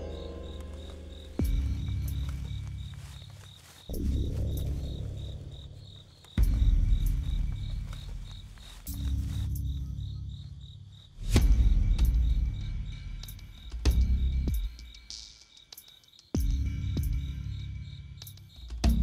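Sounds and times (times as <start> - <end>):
suspense film score swells: 0.0 - 15.1
crickets chirping: 0.0 - 19.0.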